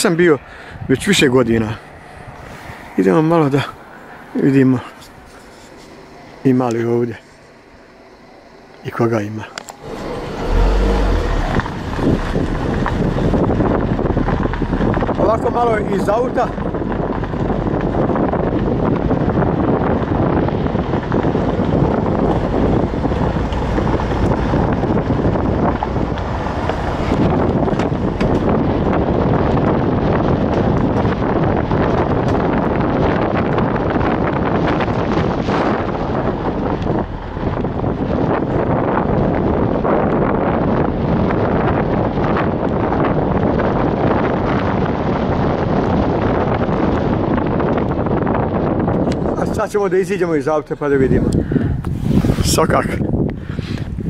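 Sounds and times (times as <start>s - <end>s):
tyre and road rumble: 0.0s - 54.0s
wind buffeting microphone: 0.0s - 54.0s
gravel crunching under tyres: 1.2s - 54.0s.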